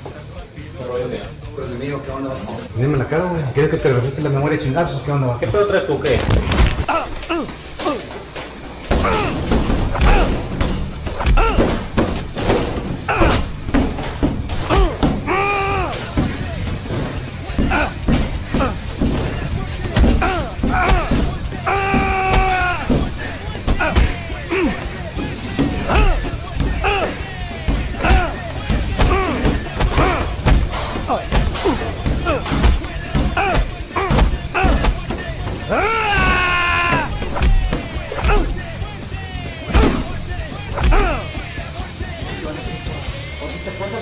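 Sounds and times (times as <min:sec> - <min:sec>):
heavy thuds of blows: 0:06.1 - 0:42.3
pained grunts: 0:06.7 - 0:08.3, 0:08.9 - 0:38.7, 0:40.7 - 0:41.3
heavy thumps on wall and door: 0:08.8 - 0:41.5
person crying out: 0:20.2 - 0:23.0, 0:26.8 - 0:27.2, 0:35.7 - 0:37.6.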